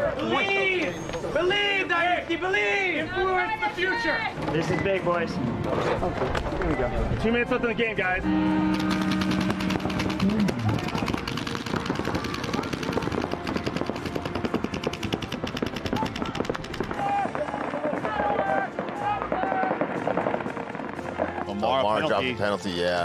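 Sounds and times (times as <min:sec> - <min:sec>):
paintball markers firing rapidly: 0:08.7 - 0:18.0.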